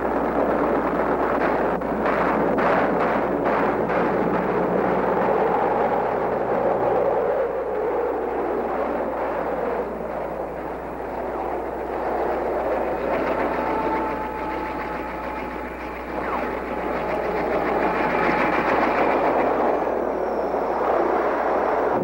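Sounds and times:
rattling engine noise: 0:00.0 - 0:21.0
faint falling tone: 0:10.4 - 0:20.8.

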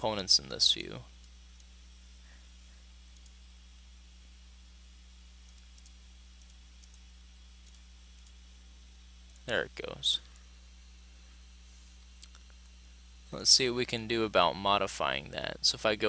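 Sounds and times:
steady low hum: 0:00.0 - 0:16.0
computer mouse clicks: 0:03.1 - 0:03.4, 0:05.4 - 0:07.0, 0:07.6 - 0:08.4.

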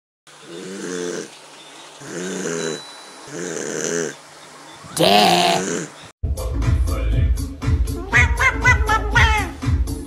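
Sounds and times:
cartoon snoring: 0:00.4 - 0:01.3, 0:02.0 - 0:04.2, 0:05.0 - 0:06.0.

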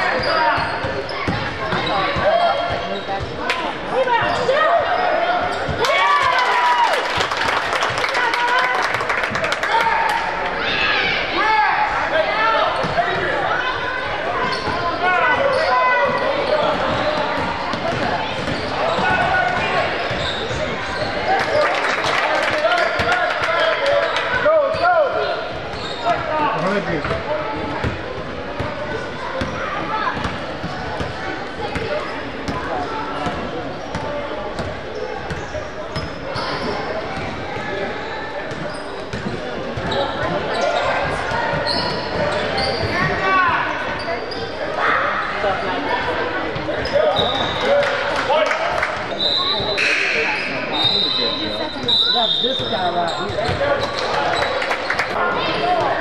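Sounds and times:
sneakers squeaking: 0:00.0 - 0:06.3, 0:10.5 - 0:47.9, 0:48.9 - 0:56.0
shouts and chatter: 0:00.0 - 0:56.0.

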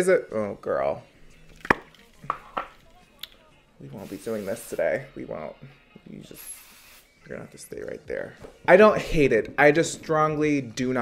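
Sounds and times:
spray can knocks: 0:01.6 - 0:02.8.

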